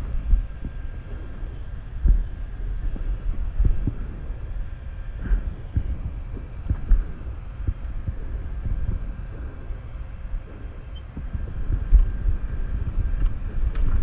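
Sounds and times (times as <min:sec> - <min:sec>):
wind rumble on microphone: 0:00.0 - 0:14.0.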